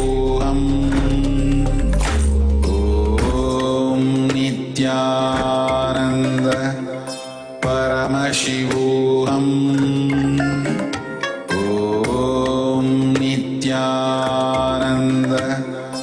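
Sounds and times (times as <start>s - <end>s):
mantra chant: 0.0s - 1.8s, 2.6s - 10.8s, 11.5s - 16.0s
musical accompaniment: 0.0s - 16.0s.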